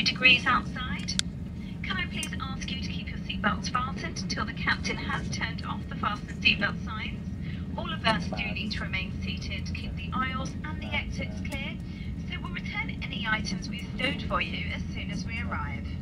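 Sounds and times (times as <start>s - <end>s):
airliner cabin hum: 0.0s - 16.0s.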